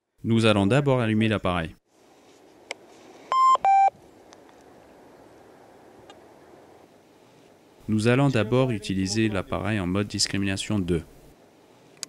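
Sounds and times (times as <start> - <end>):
metal detector start-up beeps: 3.3 - 3.9.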